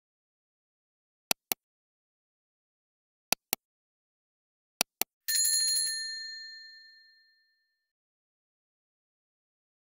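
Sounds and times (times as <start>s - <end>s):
bright bell ding: 5.3s - 7.8s.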